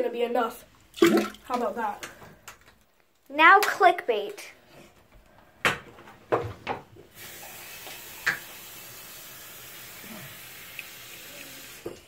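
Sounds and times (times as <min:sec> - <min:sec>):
liquid pouring into toilet bowl: 0:00.8 - 0:01.7, 0:07.1 - 0:12.0.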